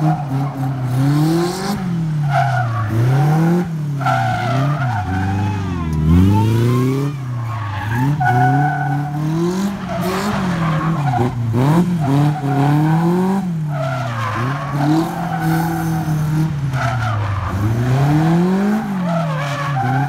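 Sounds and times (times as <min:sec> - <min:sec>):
race car engine revving: 0:00.0 - 0:20.0.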